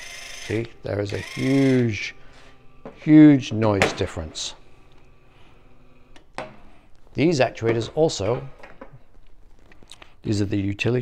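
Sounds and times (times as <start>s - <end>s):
linear actuator motor humming: 0.0s - 1.8s.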